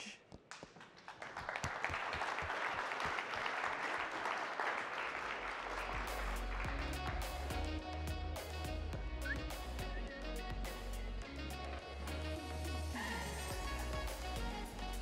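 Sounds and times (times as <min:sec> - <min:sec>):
audience applause: 0:00.5 - 0:07.4
music with bass beat: 0:05.8 - 0:15.0.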